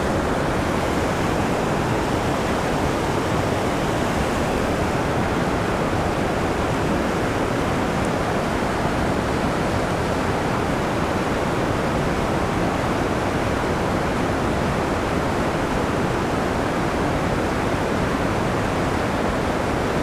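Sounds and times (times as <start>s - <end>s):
creek water rushing over rapids: 0.0s - 20.0s.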